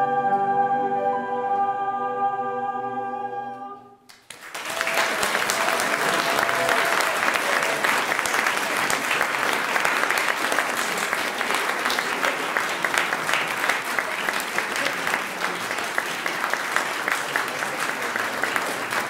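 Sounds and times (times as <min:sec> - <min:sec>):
audience applauding: 0:04.1 - 0:19.0.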